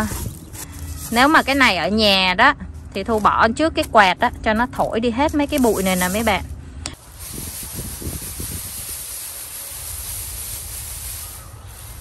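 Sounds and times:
seeds rustling on a bamboo tray: 0:00.0 - 0:02.0, 0:04.5 - 0:12.0.

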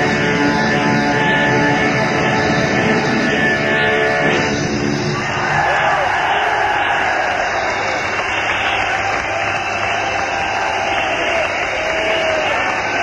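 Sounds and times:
crowd cheering: 0:04.8 - 0:13.0.

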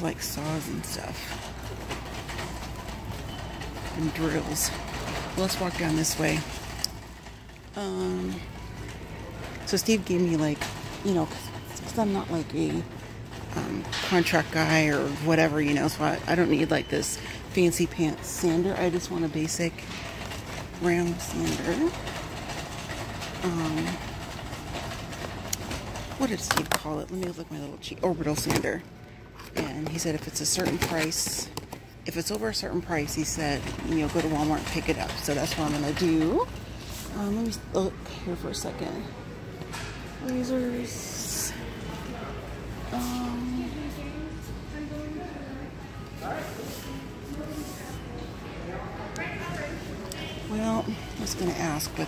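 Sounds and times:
shopping cart wheels rolling: 0:00.0 - 0:52.0.

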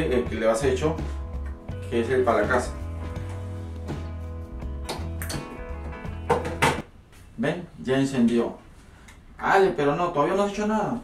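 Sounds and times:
background music: 0:00.0 - 0:06.9.

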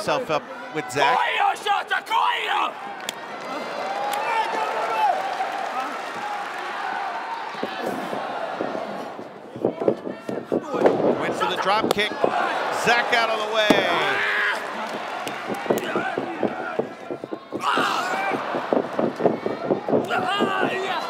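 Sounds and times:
crowd shouting: 0:00.0 - 0:21.0.

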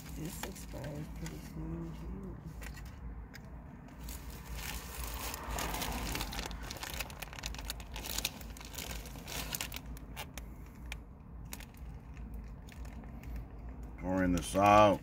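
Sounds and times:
plastic packaging crinkling: 0:04.0 - 0:15.0.

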